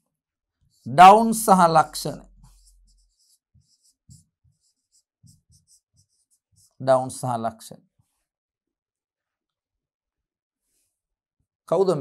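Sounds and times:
pen scratching on whiteboard: 0:00.7 - 0:06.8.

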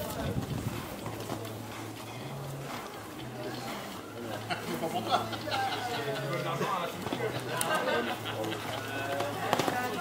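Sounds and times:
horse hooves thudding on sand: 0:00.0 - 0:04.0, 0:08.4 - 0:10.0
people talking: 0:00.0 - 0:10.0.

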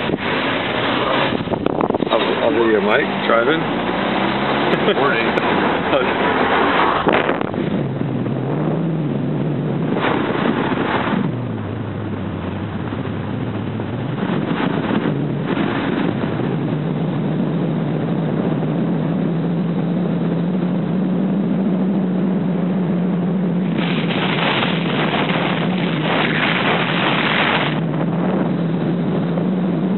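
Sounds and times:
car engine and road noise: 0:00.0 - 0:29.9
short rushes of noise: 0:23.6 - 0:28.2.

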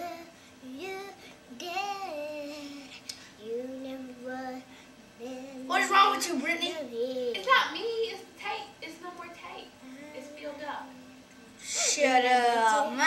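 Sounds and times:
child singing wordless tune: 0:00.0 - 0:05.9, 0:06.7 - 0:07.5.

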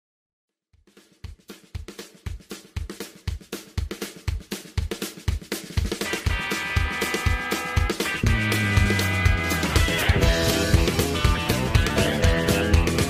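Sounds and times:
drum kit beat: 0:00.8 - 0:13.0.

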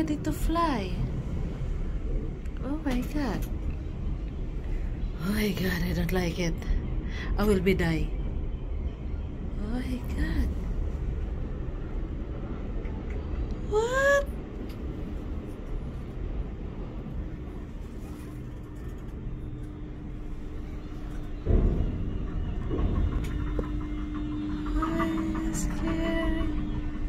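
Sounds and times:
faint steady hum: 0:00.0 - 0:27.0
wind rumble on microphone: 0:00.0 - 0:27.0.

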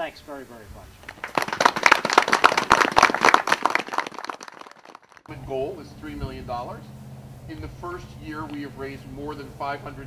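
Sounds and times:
audience applauding: 0:01.0 - 0:05.3.

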